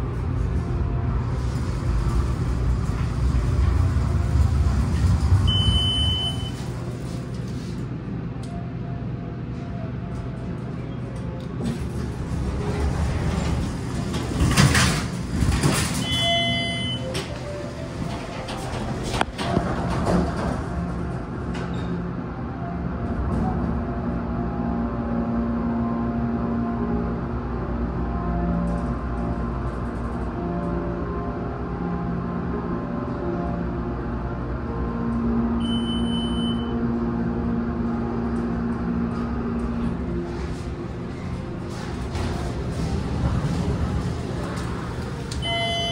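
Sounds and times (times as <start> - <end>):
elevator pump motor humming: 0.0 - 7.7, 35.2 - 45.9
elevator doors sliding shut: 0.0 - 8.0, 10.1 - 24.3, 35.1 - 36.8, 37.8 - 45.9.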